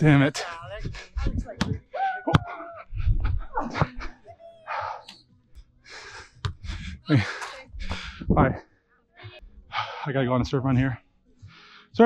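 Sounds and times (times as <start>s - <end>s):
voices: 0.0s - 5.3s, 6.7s - 8.6s
heavy breathing: 0.6s - 5.2s, 5.8s - 10.2s, 11.4s - 12.0s.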